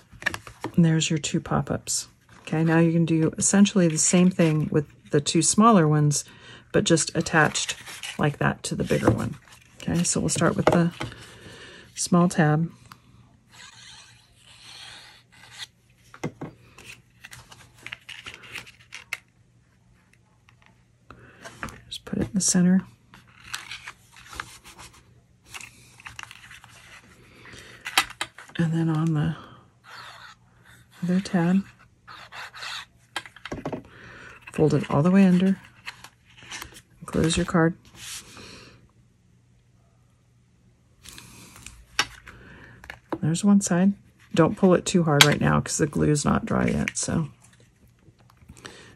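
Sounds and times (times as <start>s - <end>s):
paper rubbing and scraping: 13.5s - 15.7s
paper rustling and sliding: 34.4s - 38.3s.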